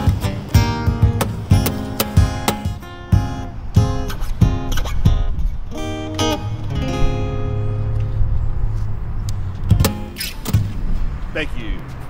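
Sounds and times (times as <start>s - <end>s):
guitar chord ringing: 0.0s - 8.5s, 9.7s - 10.4s.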